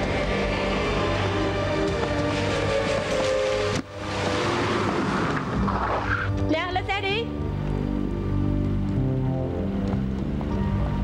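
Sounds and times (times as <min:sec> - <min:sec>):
car braking with tyre screech: 0:00.0 - 0:06.4
background music: 0:00.0 - 0:11.0.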